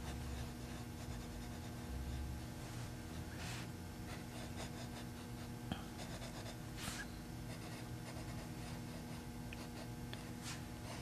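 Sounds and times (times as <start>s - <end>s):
pencil scratching on paper: 0.0s - 2.7s, 3.3s - 11.0s.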